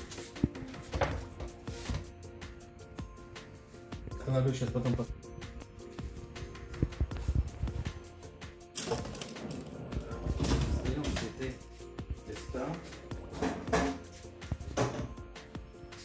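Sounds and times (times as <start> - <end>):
background music: 0.0 - 16.0
metal baking trays clattering: 13.3 - 14.0.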